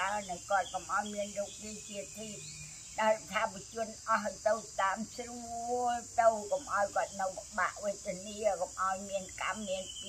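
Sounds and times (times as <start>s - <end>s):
crickets chirping: 0.0s - 10.0s
woman speaking: 0.0s - 10.0s.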